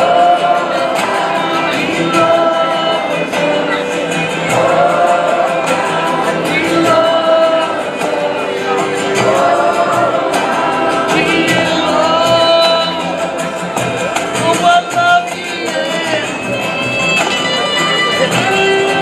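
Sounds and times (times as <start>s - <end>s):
acoustic guitar: 0.0s - 19.0s
fiddle: 0.0s - 19.0s
mandolin: 0.0s - 19.0s
upright bass: 0.0s - 19.0s
voices singing together: 0.0s - 19.0s.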